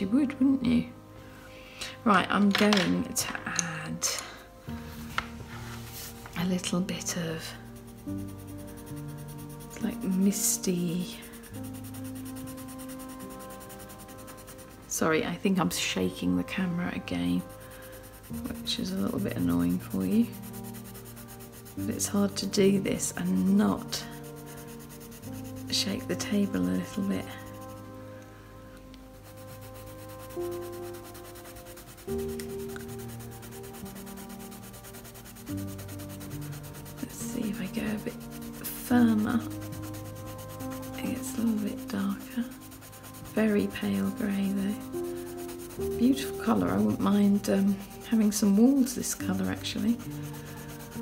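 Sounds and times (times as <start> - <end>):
soft sustained background music: 0.0 - 51.0
pencil scratching on paper: 5.5 - 28.0, 29.1 - 51.0.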